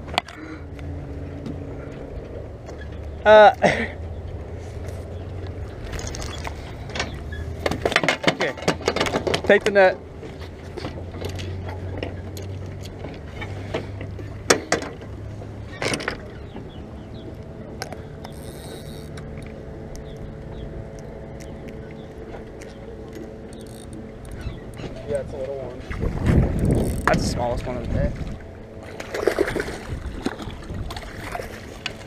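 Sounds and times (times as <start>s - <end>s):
distant boat engine hum: 0.0s - 32.0s.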